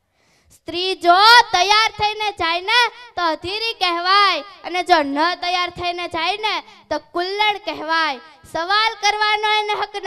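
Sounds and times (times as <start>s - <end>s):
girl declaiming into a microphone: 0.5s - 10.0s.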